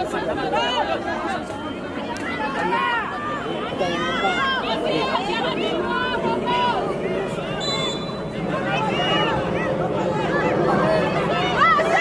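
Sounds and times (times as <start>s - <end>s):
children shouting: 2.2s - 7.0s, 8.1s - 12.0s.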